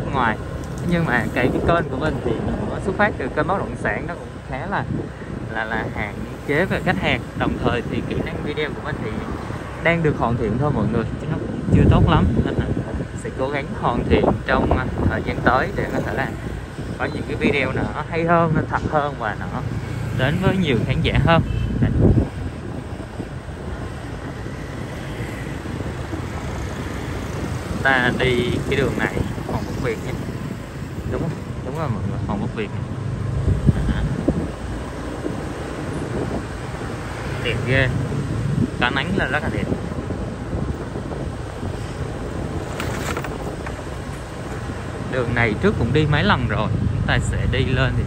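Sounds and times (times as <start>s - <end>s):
low rumble of travelling: 0.0s - 48.0s
wind noise on microphone: 0.0s - 48.0s.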